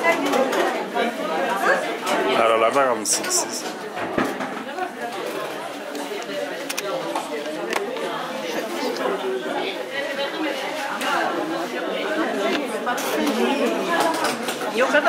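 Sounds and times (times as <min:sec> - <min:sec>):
crowd hubbub of overlapping conversation: 0:00.0 - 0:15.0.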